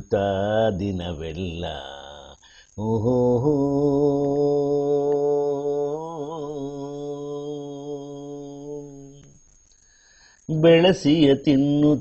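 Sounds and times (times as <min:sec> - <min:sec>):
man singing long note: 0:00.0 - 0:09.3.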